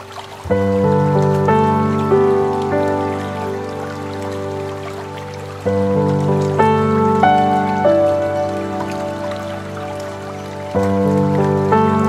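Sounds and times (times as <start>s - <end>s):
running water: 0.0s - 12.0s
slow ambient piano music: 0.0s - 12.0s.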